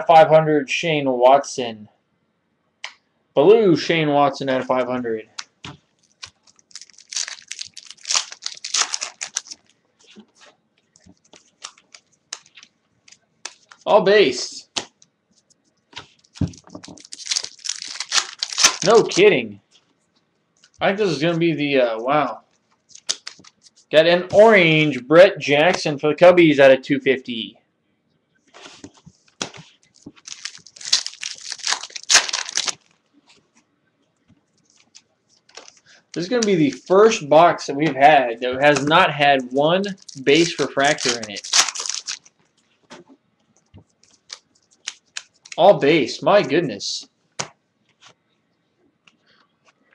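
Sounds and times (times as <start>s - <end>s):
wrapper tearing and crinkling: 6.0s - 9.8s, 11.2s - 12.7s, 16.2s - 19.2s, 22.9s - 23.8s, 29.8s - 33.0s, 34.6s - 36.9s, 39.8s - 42.4s, 44.0s - 45.6s.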